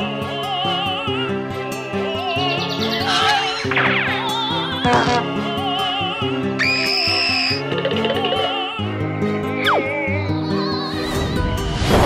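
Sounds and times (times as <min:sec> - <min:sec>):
warbling operatic-style singing: 0:00.0 - 0:11.9.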